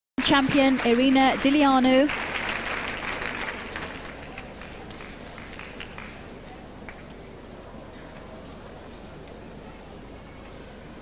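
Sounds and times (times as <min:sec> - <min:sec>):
crowd applauding: 0:00.2 - 0:07.1
scattered claps: 0:00.2 - 0:07.2
low hall murmur: 0:00.2 - 0:11.0.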